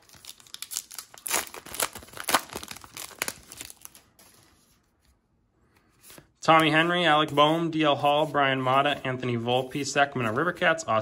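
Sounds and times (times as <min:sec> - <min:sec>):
plastic wrapper tearing and crinkling: 0:00.0 - 0:04.3.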